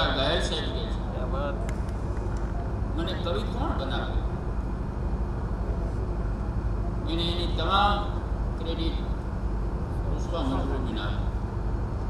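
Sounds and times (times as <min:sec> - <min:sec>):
man speaking through microphone: 0:00.0 - 0:01.7, 0:02.9 - 0:04.3, 0:07.0 - 0:09.2, 0:10.0 - 0:11.4
low background rumble: 0:00.0 - 0:12.0.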